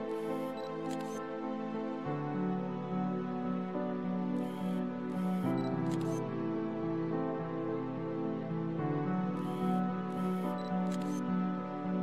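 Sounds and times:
soft background music: 0.0s - 12.0s
camera shutter click: 0.3s - 1.2s, 4.5s - 6.2s, 9.4s - 11.2s.

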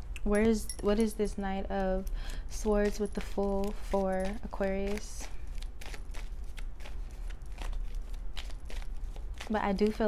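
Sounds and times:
cards being shuffled: 1.8s - 10.0s.

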